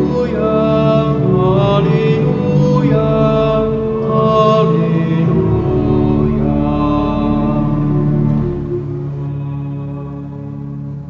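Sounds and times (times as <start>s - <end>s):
church organ music: 0.0s - 11.0s.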